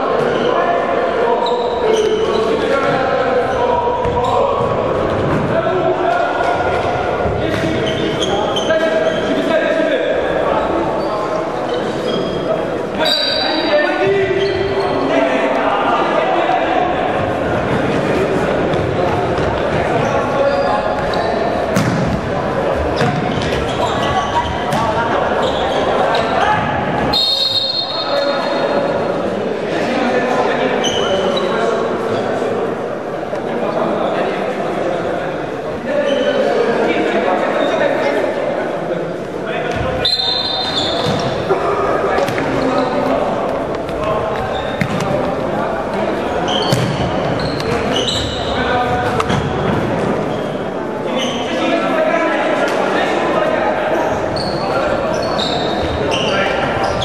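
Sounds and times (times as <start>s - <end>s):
jumble of voices in a hall: 0.0s - 57.0s
shoe squeaks on floor: 1.4s - 4.7s, 7.4s - 9.5s, 10.6s - 15.1s, 19.4s - 22.0s, 22.8s - 28.8s, 30.8s - 32.2s, 39.7s - 41.5s, 43.9s - 45.3s, 46.3s - 51.8s, 53.9s - 57.0s
referee's whistle: 13.0s - 13.7s, 27.1s - 28.5s, 40.0s - 41.2s.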